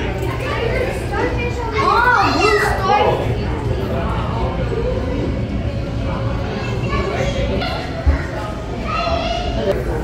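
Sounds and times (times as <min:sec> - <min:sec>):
children chattering in a hall: 0:00.0 - 0:10.0.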